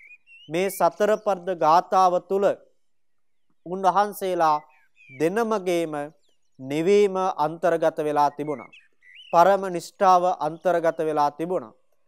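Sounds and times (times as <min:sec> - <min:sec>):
man speaking: 0:00.5 - 0:02.7, 0:03.7 - 0:04.6, 0:05.2 - 0:08.7, 0:09.4 - 0:11.7.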